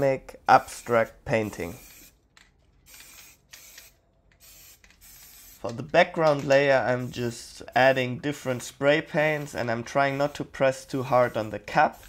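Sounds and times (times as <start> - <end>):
aerosol spray can hissing: 0.6 - 2.2, 2.9 - 5.7.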